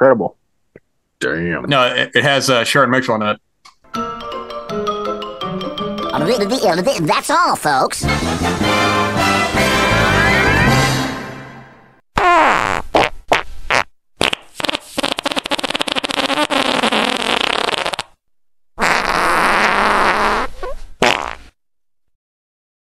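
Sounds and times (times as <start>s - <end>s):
outro music: 3.9s - 6.9s, 8.0s - 12.0s
rasping fart-like noises: 12.2s - 18.2s, 18.8s - 21.6s.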